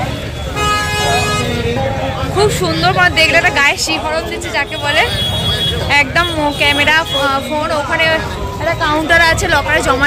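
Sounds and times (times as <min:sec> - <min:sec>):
vehicle horn honking: 0:00.0 - 0:01.7, 0:04.6 - 0:07.4
crowd voices: 0:00.0 - 0:10.0
street traffic rumble: 0:00.0 - 0:10.0.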